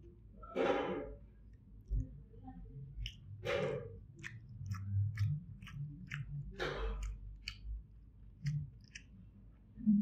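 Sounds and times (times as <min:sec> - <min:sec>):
person chewing with wet smacking: 0:01.4 - 0:09.7.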